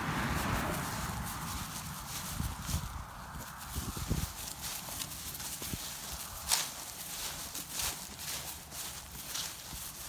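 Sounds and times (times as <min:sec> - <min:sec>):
footsteps in dry grass: 0:00.0 - 0:10.0.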